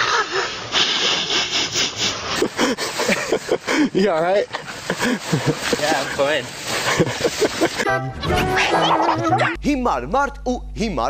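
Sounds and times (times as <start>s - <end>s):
snow crunching and scraping: 2.6s - 7.8s.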